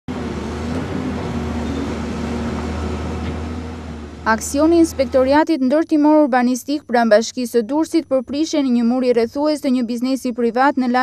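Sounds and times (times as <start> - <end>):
excavator diesel engine running: 0.1 - 5.4.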